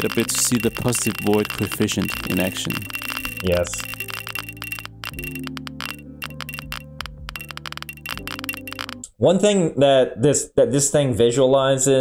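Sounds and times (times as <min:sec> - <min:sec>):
chime-like clicks: 0:00.0 - 0:09.0.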